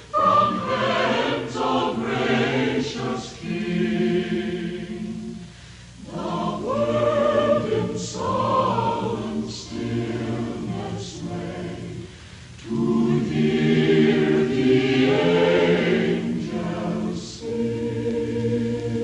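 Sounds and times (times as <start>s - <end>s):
mixed choir singing a carol: 0.0s - 19.0s.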